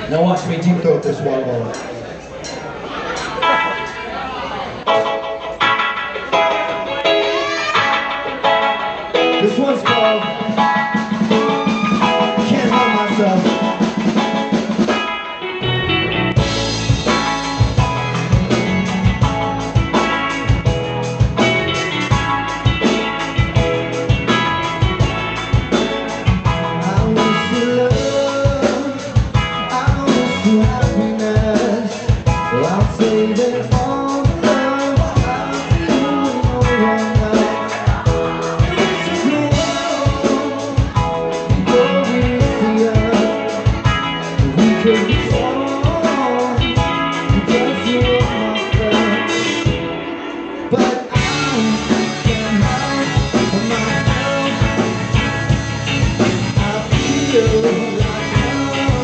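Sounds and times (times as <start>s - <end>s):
bass guitar: 0.0s - 59.0s
electric guitars: 0.0s - 59.0s
drum kit steady beat: 4.9s - 50.1s, 50.8s - 59.0s.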